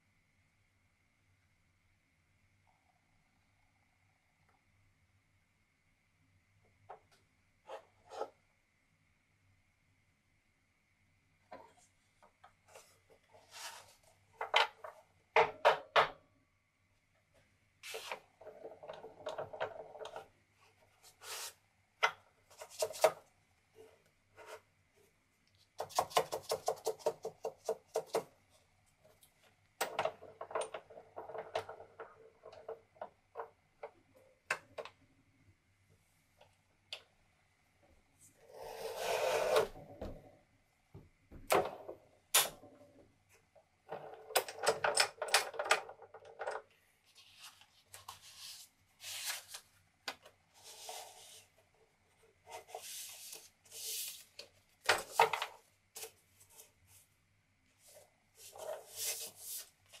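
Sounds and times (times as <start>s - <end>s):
paper rustling: 47.1s - 49.8s.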